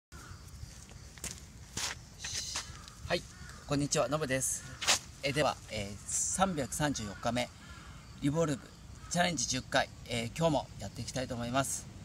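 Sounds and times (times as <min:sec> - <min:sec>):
footsteps on sandy dirt path: 0:00.2 - 0:03.6.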